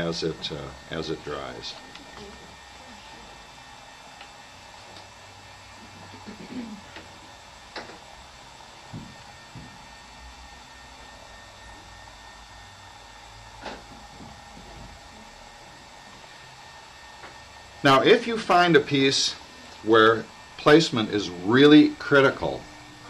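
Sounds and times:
faint steady hum: 0.0 - 23.0.

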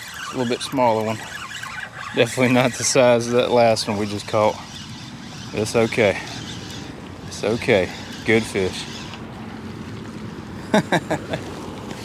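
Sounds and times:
water: 0.0 - 12.0
wind: 0.0 - 12.0
man laughing: 10.6 - 11.5.

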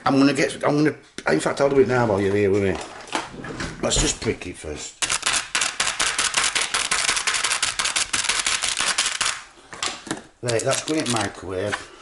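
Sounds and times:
fork piercing plastic film: 10.4 - 11.3.

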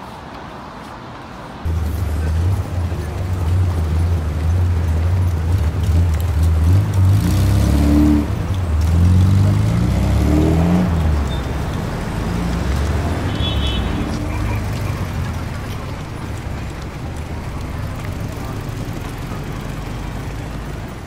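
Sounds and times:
vehicle engine running unevenly: 1.7 - 21.0.

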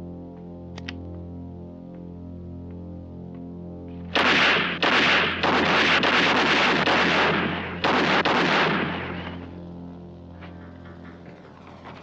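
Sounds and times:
gunshots with reverberant tails: 4.1 - 9.6, 10.3 - 12.0.

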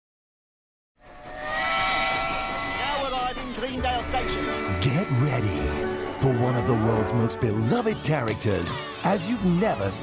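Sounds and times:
steam locomotive whistle: 1.0 - 7.4.

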